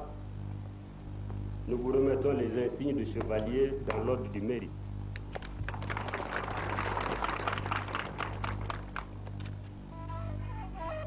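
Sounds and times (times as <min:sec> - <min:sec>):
low steady hum: 0:00.0 - 0:11.0
crowd applauding: 0:05.3 - 0:09.5.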